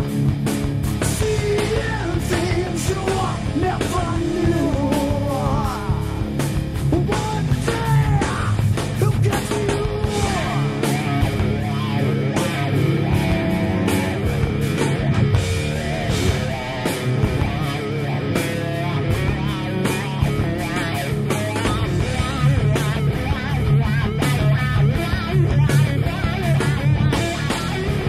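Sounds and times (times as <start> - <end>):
bass guitar: 0.0 - 28.0
electric guitars: 0.0 - 28.0.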